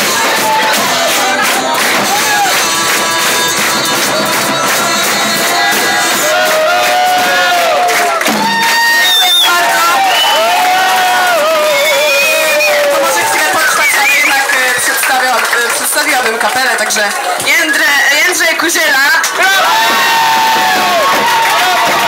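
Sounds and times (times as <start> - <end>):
audience cheering: 0.0 - 18.3, 19.3 - 22.0
loud whoops and shouts: 5.6 - 14.5, 19.4 - 22.0
live band with flute and violin: 8.3 - 10.6.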